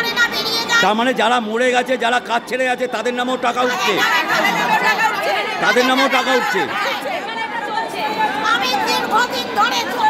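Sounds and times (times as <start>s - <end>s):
women shouting and talking: 0.0s - 1.2s, 3.0s - 10.0s.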